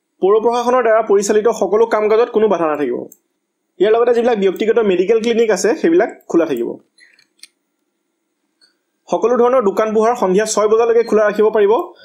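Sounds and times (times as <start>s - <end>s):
person speaking: 0.2s - 7.5s, 9.0s - 12.0s.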